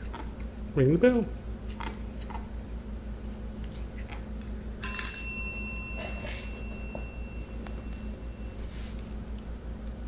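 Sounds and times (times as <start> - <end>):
desk bell ringing: 4.8 - 8.6.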